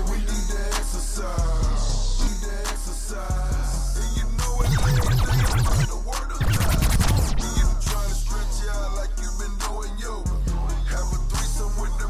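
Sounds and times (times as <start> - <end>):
hip hop beat: 0.0 - 12.0
turntable scratching: 4.4 - 7.7.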